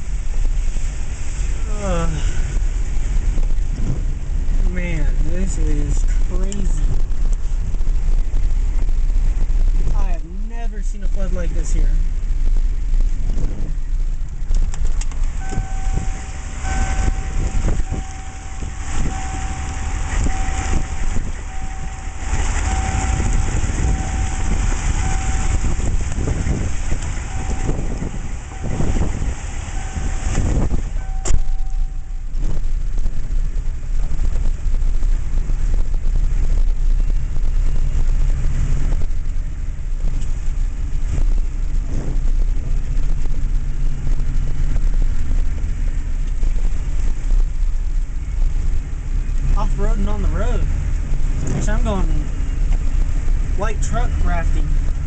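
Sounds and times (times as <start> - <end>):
rushing floodwater: 0.0 - 35.8, 42.2 - 55.0
electronic beep: 15.4 - 25.8, 27.3 - 32.2.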